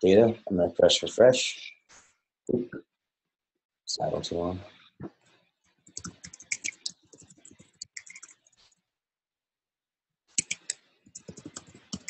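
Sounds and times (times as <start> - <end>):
keyboard typing: 5.9 - 8.5, 10.4 - 12.0.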